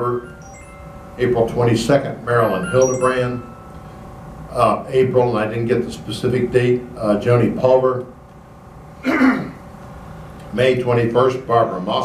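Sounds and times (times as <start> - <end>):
man coughing into a microphone: 9.0 - 9.6.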